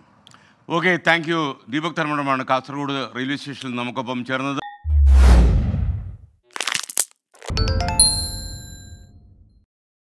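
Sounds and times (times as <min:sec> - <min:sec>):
deep hit: 0:04.9 - 0:06.2
rushing whoosh: 0:04.9 - 0:06.2
swish ending in sharp crack: 0:05.0 - 0:06.2
bright ringing chime: 0:07.5 - 0:09.2.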